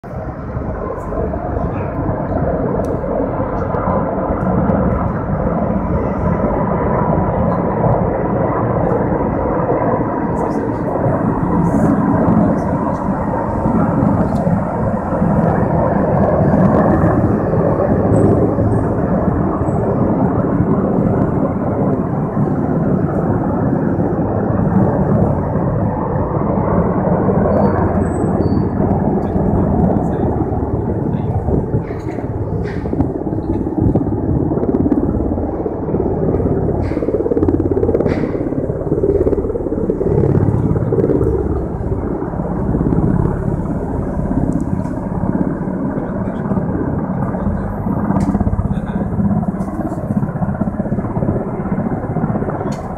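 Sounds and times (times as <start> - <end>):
helicopter rotor and engine rumble: 0.0 - 52.9.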